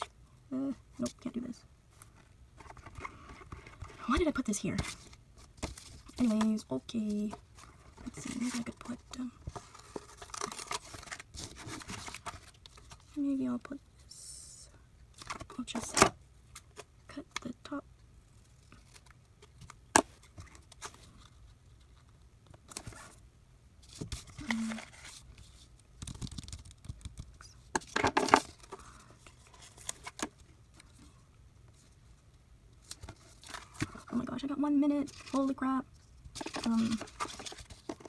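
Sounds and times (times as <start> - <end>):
paper rustling: 2.0 - 13.2, 23.8 - 31.1, 36.3 - 38.0.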